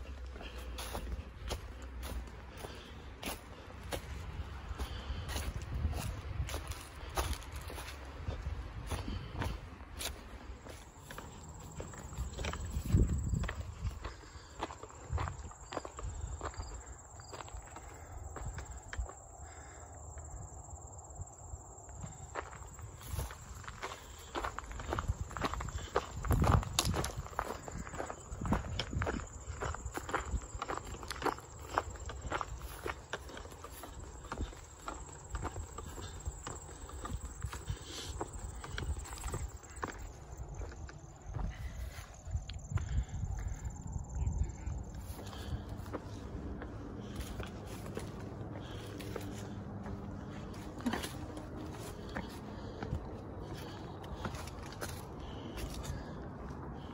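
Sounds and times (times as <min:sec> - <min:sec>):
footsteps crunching on gravel: 0:00.0 - 0:19.8, 0:22.0 - 0:43.6, 0:44.4 - 0:56.9.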